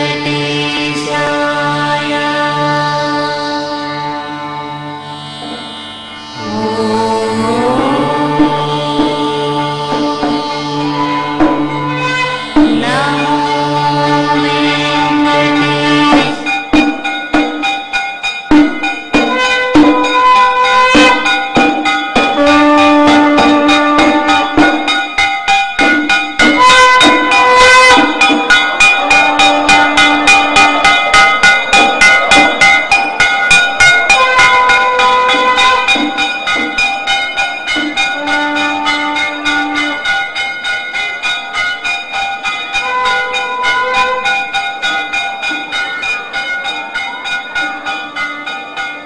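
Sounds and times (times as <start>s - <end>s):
long held melody notes: 0.0s - 16.7s, 26.5s - 41.2s
brass hand gong strokes: 0.0s - 17.0s, 19.2s - 36.8s, 37.7s - 40.4s.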